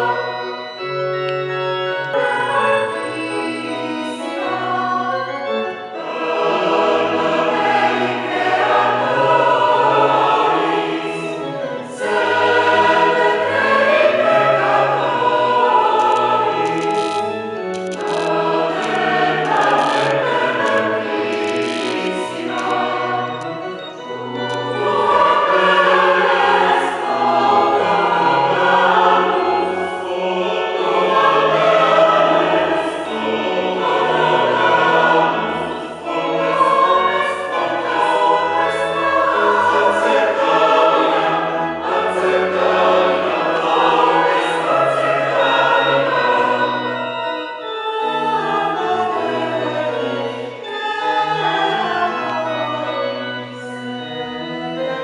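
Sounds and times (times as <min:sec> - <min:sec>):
mixed choir singing: 0:00.0 - 0:00.9, 0:01.8 - 0:55.0.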